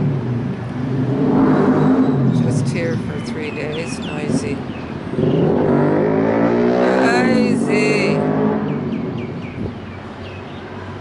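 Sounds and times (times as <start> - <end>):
vehicle engine accelerating: 0.0 - 10.1.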